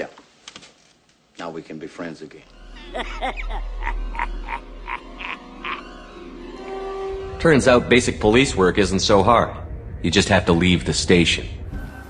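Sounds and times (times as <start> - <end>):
low steady drone: 2.5 - 12.0
man's raspy cackling laugh: 2.8 - 6.0.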